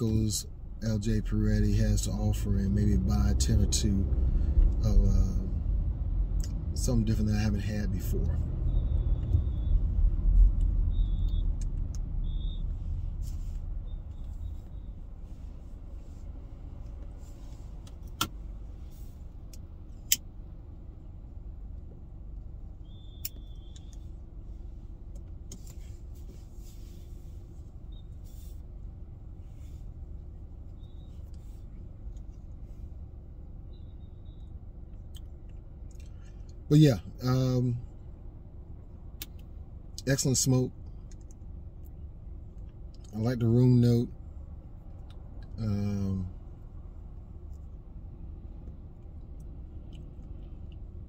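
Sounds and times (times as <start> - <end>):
car cabin road rumble: 0.0 - 51.0.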